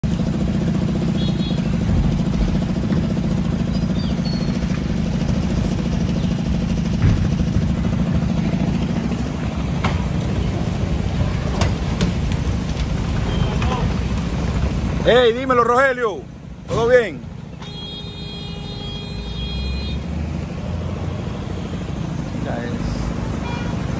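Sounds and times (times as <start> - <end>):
vehicle engines idling: 0.0 - 23.9
sharp knocks: 6.9 - 7.8, 9.8 - 10.2.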